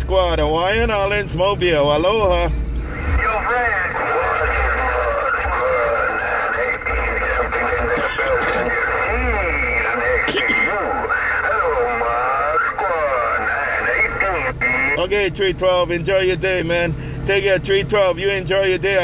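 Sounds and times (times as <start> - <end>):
radio static: 3.0 - 15.0
voice over cb radio speaker: 3.0 - 16.8.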